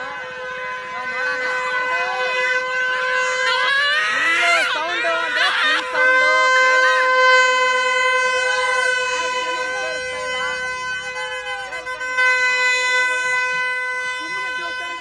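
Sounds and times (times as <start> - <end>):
crowd voices: 0.0 - 15.0
steady pitched tone: 0.0 - 15.0.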